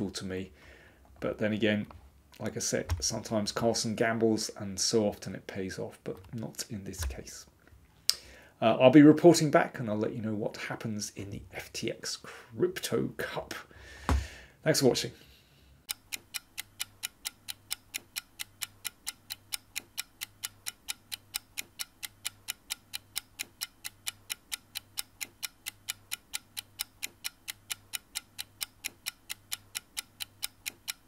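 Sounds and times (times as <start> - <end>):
clock ticking: 6.2 - 7.4, 15.8 - 31.0.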